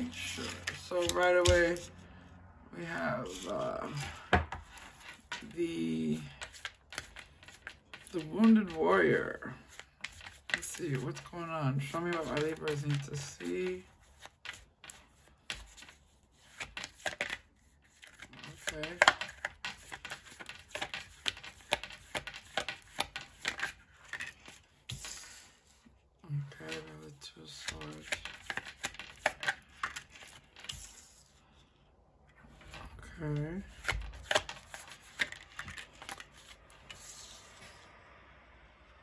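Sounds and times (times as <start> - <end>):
cards being shuffled: 0.0 - 2.0, 2.8 - 25.9, 26.5 - 31.4, 32.4 - 37.8.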